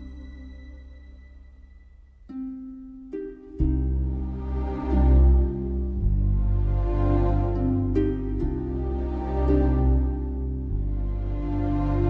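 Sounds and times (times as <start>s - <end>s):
plucked string note ringing: 0.0s - 4.1s
low sustained tone: 0.0s - 12.0s.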